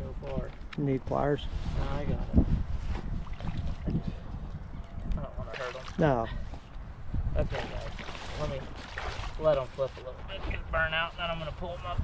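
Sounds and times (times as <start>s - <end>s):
wind rumble on microphone: 0.0s - 12.0s
shallow water splashing: 3.1s - 4.0s, 5.4s - 6.3s, 7.4s - 10.0s.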